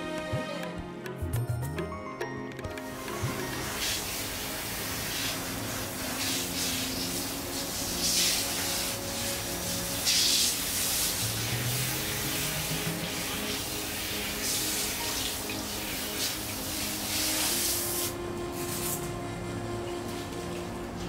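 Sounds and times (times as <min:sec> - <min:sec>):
soft background music: 0:00.0 - 0:21.0
shower head spraying water on hair: 0:02.8 - 0:19.1.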